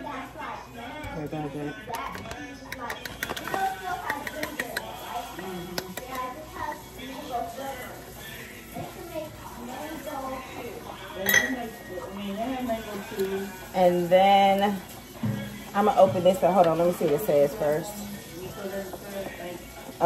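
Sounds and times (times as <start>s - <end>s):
spoon clinking in metal bowl: 1.9s - 6.4s, 10.3s - 17.6s.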